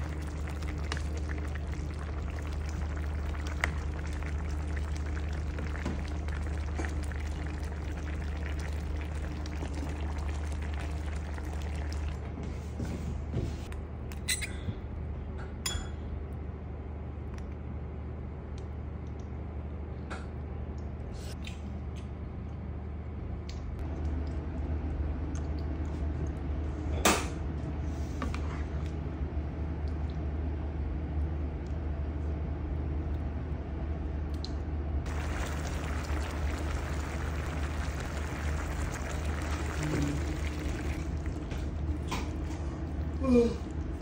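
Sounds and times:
steady low hum: 0:00.0 - 0:44.0
curry simmering and stirred: 0:35.1 - 0:44.0.

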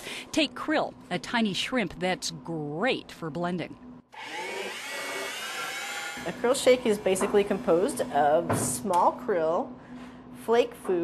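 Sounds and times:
blender motor whine: 0:04.1 - 0:06.6.

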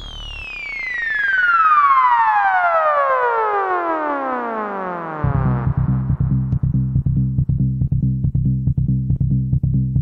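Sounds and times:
falling synthesizer sweep: 0:00.0 - 0:07.3
fast ticking rhythm: 0:05.2 - 0:10.0.

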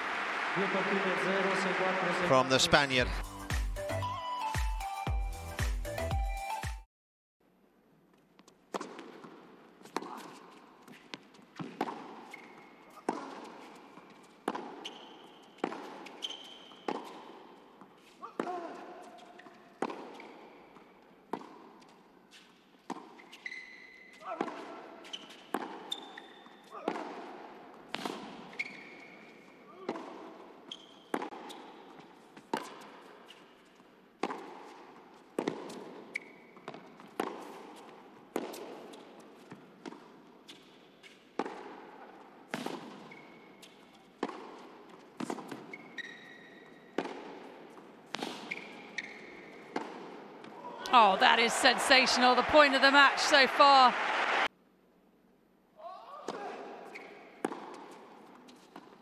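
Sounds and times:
tennis racket strokes: 0:08.3 - 0:50.6, 0:56.3 - 0:59.0
tennis ball bouncing: 0:08.4 - 0:29.2, 0:29.8 - 0:50.6, 0:56.3 - 0:59.0
shoe squeaks: 0:09.8 - 0:20.9, 0:21.8 - 0:26.9, 0:27.9 - 0:29.9, 0:30.6 - 0:33.9, 0:35.6 - 0:39.6, 0:40.4 - 0:41.4, 0:42.5 - 0:44.3, 0:44.9 - 0:47.0, 0:47.7 - 0:49.9, 0:56.8 - 0:59.0.

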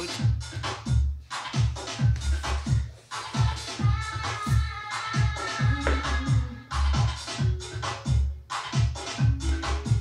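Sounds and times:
electronic dance music: 0:00.0 - 0:10.0
punchy kick drum: 0:03.4 - 0:07.6.

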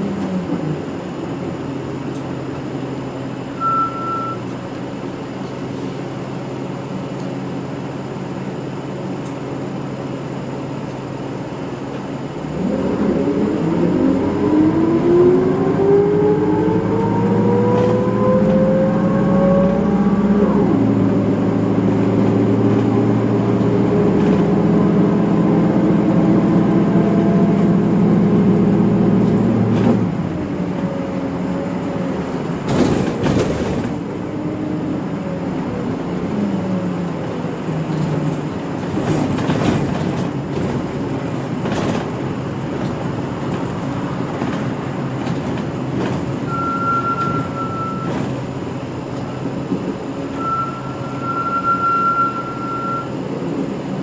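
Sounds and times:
bus diesel engine: 0:00.0 - 0:54.0.

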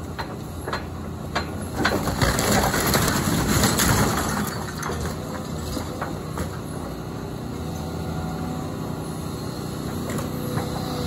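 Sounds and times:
excavator diesel engine: 0:00.0 - 0:11.0.

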